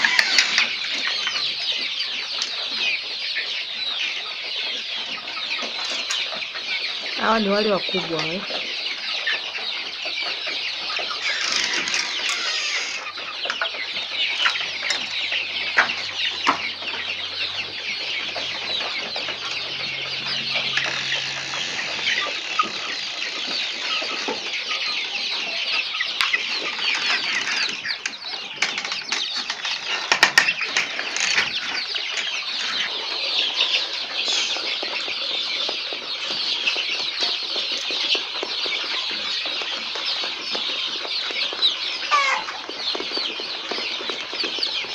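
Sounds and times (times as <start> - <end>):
chicks cheeping: 0.0 - 44.9.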